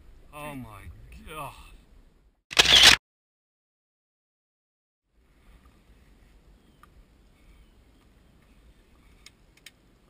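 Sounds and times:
camera shutter sound effect: 2.5s - 3.0s.

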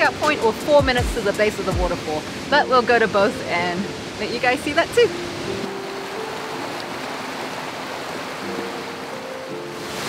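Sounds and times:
soft background music: 0.0s - 10.0s
waterfall rushing: 0.0s - 10.0s.

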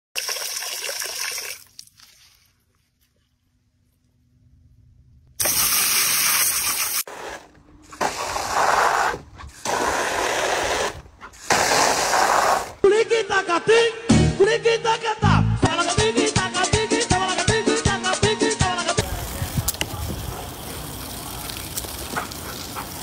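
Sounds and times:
hose nozzle spraying water: 5.4s - 12.8s, 19.0s - 23.0s.

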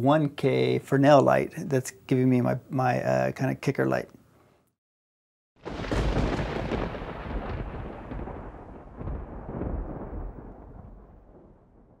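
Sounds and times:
deep rumbling boom: 5.6s - 12.0s.

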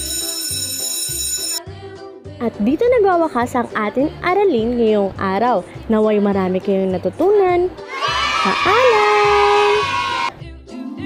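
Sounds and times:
high ringing tone: 0.0s - 1.6s.

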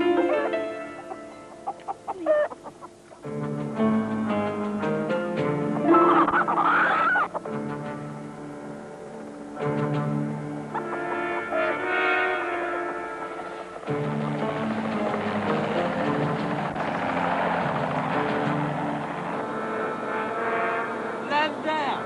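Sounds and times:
dramatic music with sustained chords: 0.0s - 22.0s
helicopter engine and rotor noise: 13.4s - 22.0s.

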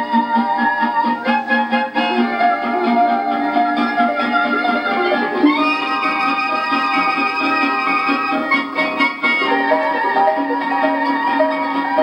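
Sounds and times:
harp dance music on gramophone: 0.0s - 12.0s.

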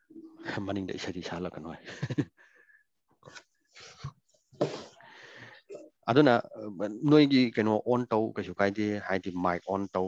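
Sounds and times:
man speaking: 0.3s - 1.8s, 6.0s - 10.0s.

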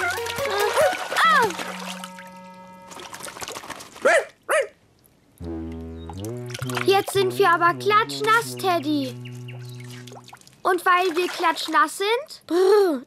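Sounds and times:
light background music: 0.0s - 2.9s
cartoon water splash: 0.0s - 4.0s, 5.4s - 8.8s.

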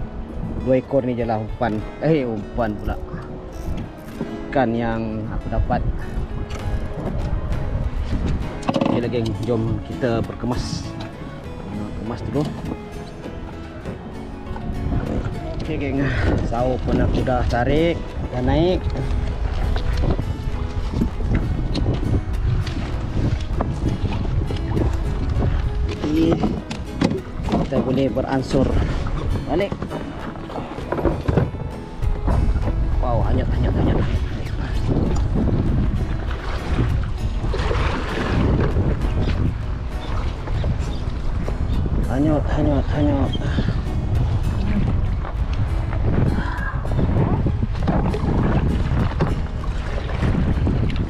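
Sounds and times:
background music: 0.0s - 51.0s
wind rumble on microphone: 0.0s - 51.0s
seawater sloshing around kayak: 6.2s - 33.0s, 33.6s - 51.0s.

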